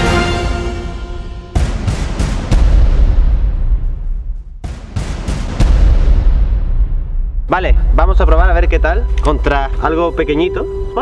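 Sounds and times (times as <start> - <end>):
loud sharp bangs: 1.4 - 7.5.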